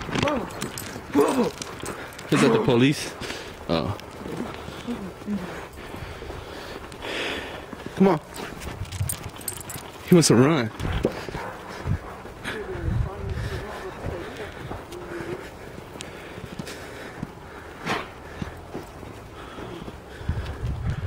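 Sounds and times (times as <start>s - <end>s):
faint voices: 0.0s - 20.1s.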